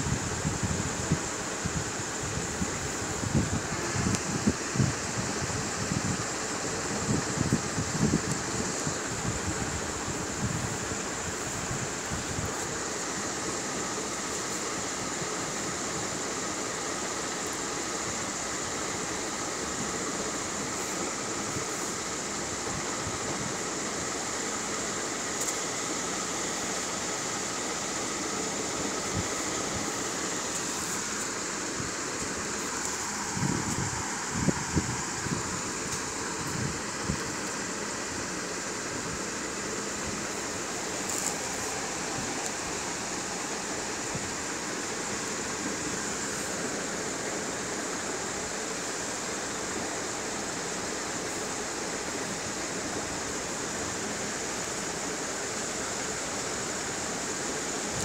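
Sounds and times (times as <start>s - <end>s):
faint high whine: 0.0s - 58.0s
steady fan hiss: 0.0s - 58.0s.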